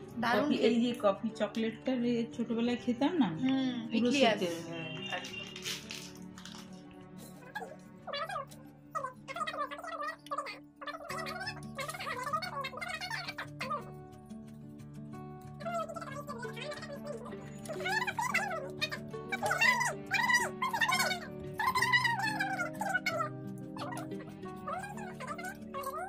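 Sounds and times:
soft background music: 0:00.0 - 0:26.0.

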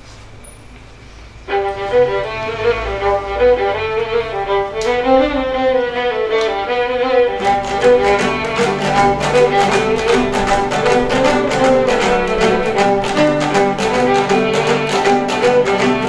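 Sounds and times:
fiddle folk tune: 0:01.4 - 0:16.0
plucked lutes: 0:01.5 - 0:16.0.

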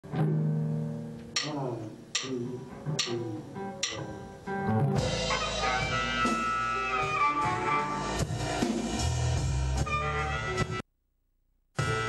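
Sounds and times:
electric blues band with harmonica: 0:04.5 - 0:10.8, 0:11.8 - 0:12.0
drum and cymbal hit: 0:05.0 - 0:09.9.

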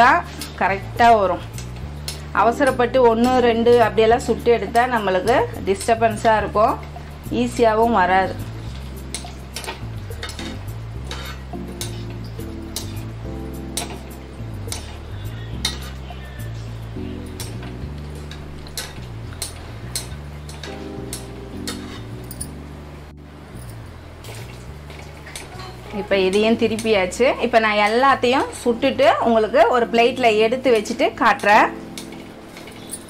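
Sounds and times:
slow low background music: 0:00.0 - 0:33.0
metal ladle tapping metal pan: 0:09.1 - 0:13.1, 0:13.7 - 0:15.0.

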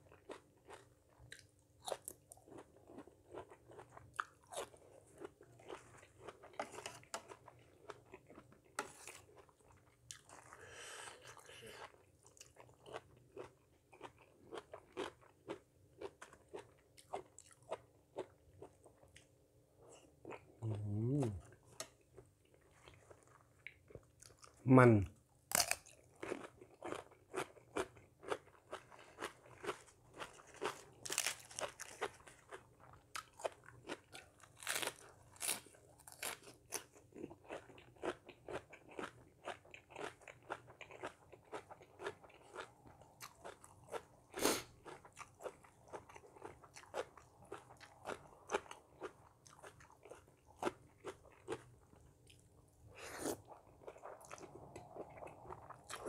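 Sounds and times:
crunching raw cucumber: 0:25.5 - 0:28.4, 0:29.2 - 0:39.1.

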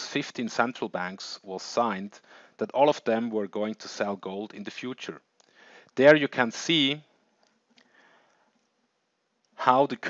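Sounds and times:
faint sniff: 0:02.2 - 0:02.6.

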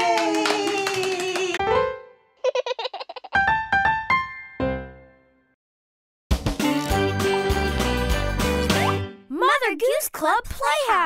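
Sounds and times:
voices cheering yay: 0:00.0 - 0:01.6.

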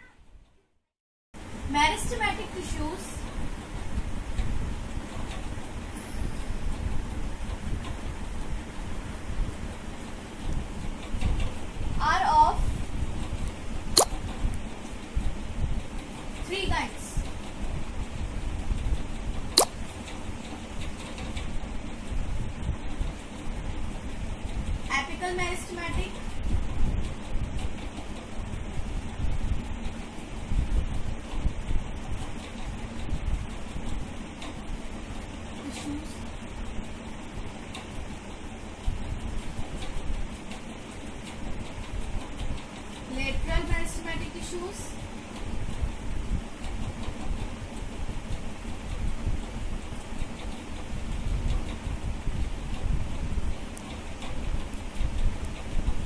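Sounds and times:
wind noise on microphone: 0:01.6 - 0:56.0.

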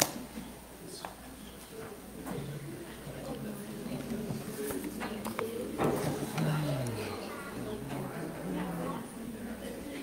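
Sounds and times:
overlapping voices chatting: 0:00.0 - 0:10.0.

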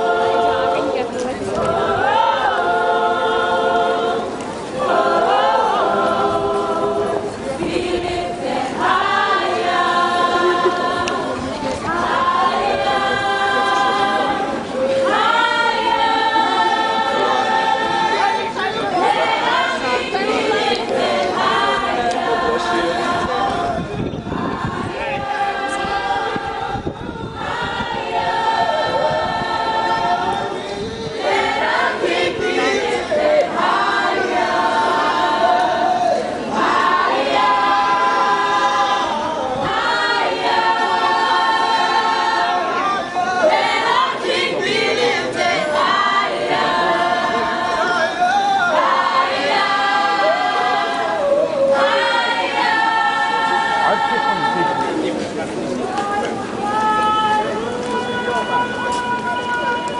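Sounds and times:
gospel choir singing: 0:00.0 - 0:59.9.

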